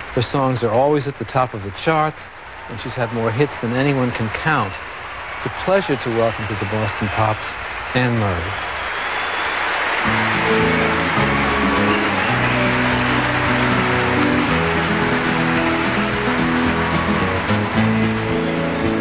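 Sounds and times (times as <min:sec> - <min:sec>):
audience applause: 0:02.4 - 0:19.0
orchestra playing slow chords: 0:10.1 - 0:19.0.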